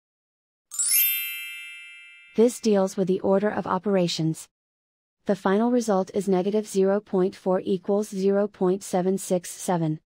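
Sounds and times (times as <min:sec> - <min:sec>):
bright electronic chime: 0:00.7 - 0:02.6.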